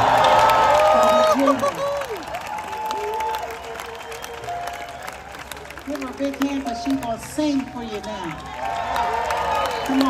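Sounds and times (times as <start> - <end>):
crowd applauding: 0.0 - 10.0.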